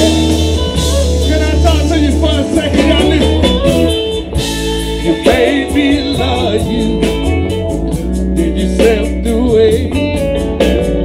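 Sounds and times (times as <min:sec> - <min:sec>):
blues band playing: 0:00.0 - 0:11.0.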